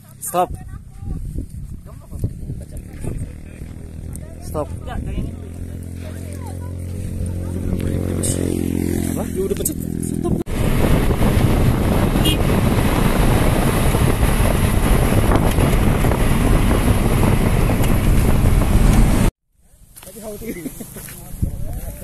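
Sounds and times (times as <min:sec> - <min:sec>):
vehicle rumble driving on sand: 0:00.0 - 0:19.3.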